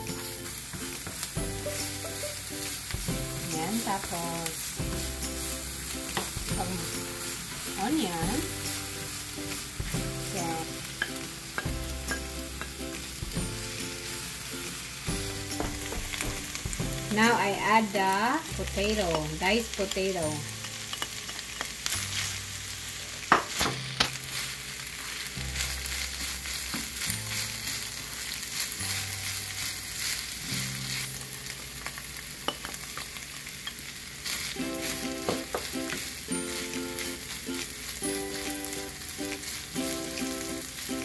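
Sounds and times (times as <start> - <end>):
meat and potato sizzling in skillet: 0.0 - 41.0.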